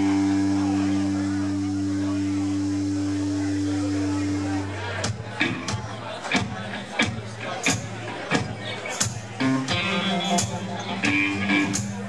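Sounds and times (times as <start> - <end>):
amplified band chord ringing: 0.0 - 4.8.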